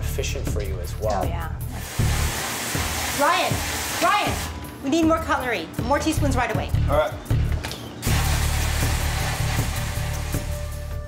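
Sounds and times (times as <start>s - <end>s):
background music: 0.0s - 11.0s
spray nozzle hissing water: 1.7s - 4.6s, 8.0s - 10.8s.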